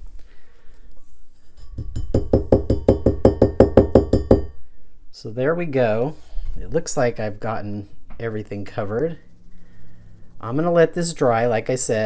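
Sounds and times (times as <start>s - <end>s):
metal tumbler knocking on surface: 1.6s - 4.6s.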